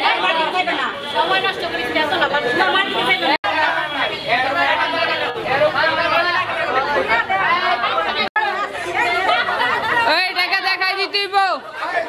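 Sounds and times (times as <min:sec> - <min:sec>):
overlapping crowd chatter: 0:00.0 - 0:12.0.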